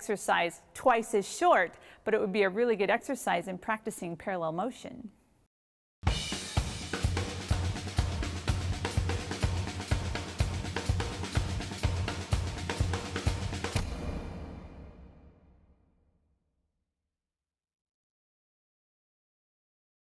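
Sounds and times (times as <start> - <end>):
drum kit playing busy beat: 6.0 - 14.2.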